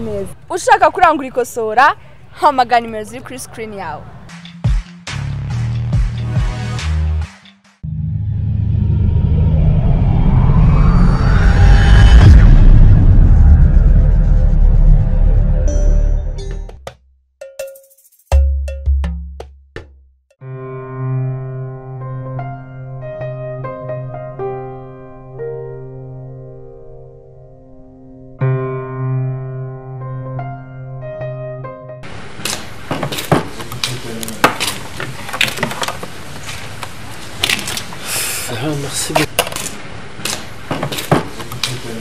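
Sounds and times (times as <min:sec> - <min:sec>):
deep bass boom: 0:07.8 - 0:16.4.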